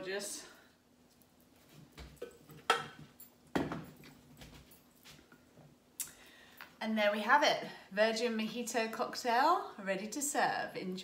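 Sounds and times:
kitchen things clicking and knocking: 2.0s - 4.2s.

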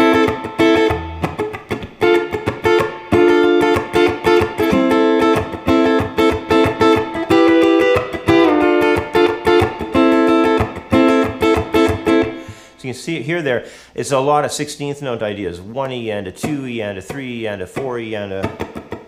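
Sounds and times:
electric guitar funk strumming: 0.0s - 12.8s, 15.6s - 19.0s.

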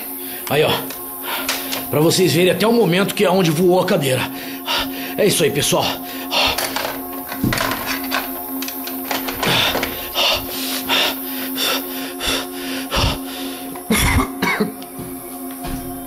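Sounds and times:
music with low drone: 0.0s - 16.0s.

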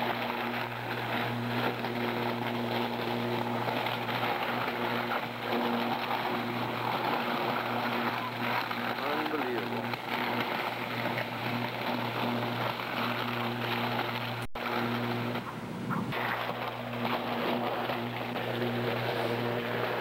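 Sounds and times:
electrical arc buzzing and crackling: 0.0s - 20.0s.

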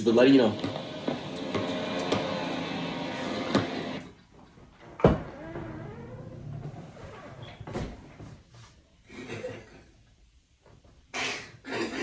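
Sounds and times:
leaf blower running: 0.5s - 4.0s.

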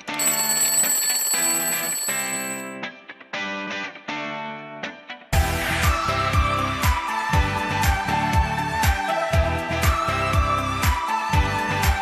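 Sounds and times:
alarm clock bell ringing: 0.0s - 2.8s.

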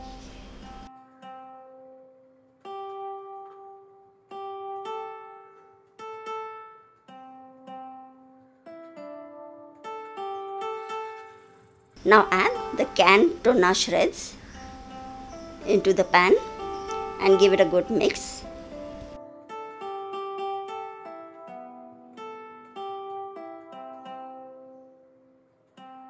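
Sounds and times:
plucked string melody: 0.0s - 26.0s.

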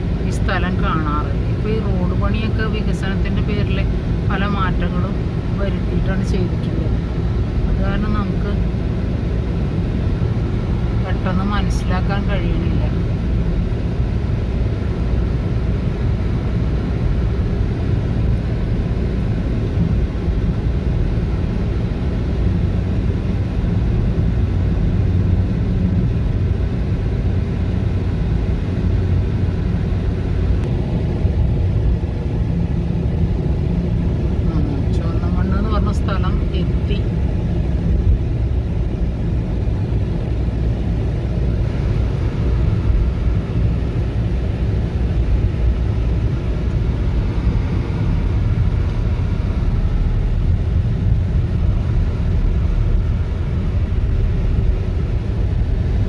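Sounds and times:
car engine and tyres rumble: 0.0s - 56.0s.

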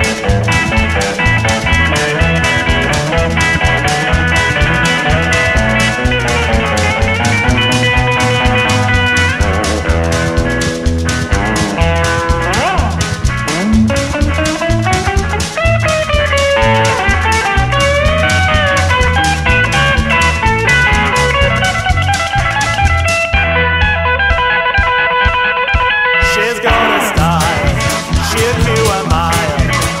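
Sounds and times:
bass and drums: 0.0s - 30.0s
electric guitar bending notes: 0.0s - 30.0s.

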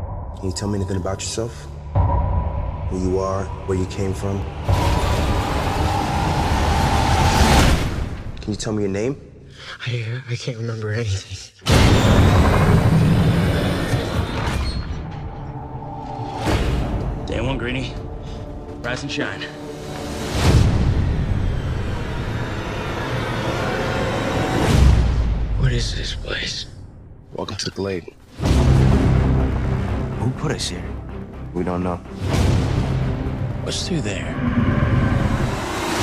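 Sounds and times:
mechanical rumbling and rushing: 11.8s - 17.3s, 33.1s - 36.0s
low rumbling drone: 32.4s - 36.0s.

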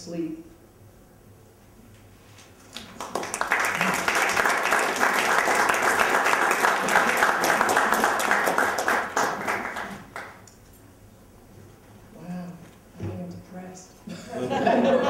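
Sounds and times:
audience applauding: 2.7s - 10.4s.

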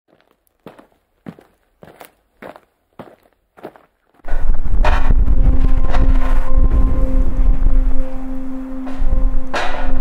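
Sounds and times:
footsteps crunching: 0.1s - 6.9s.

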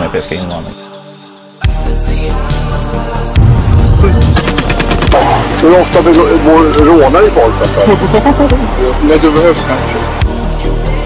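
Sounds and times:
automatic rifle fire: 4.4s - 5.2s.

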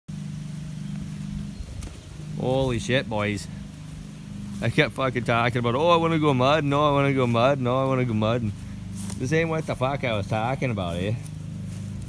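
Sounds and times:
riding lawn mower engine running: 0.1s - 12.0s.

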